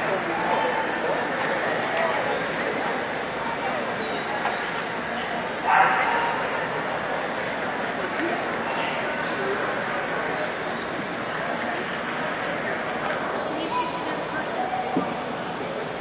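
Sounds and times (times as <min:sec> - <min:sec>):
chatter of many voices: 0:00.0 - 0:16.0
dog barking: 0:05.7 - 0:06.5.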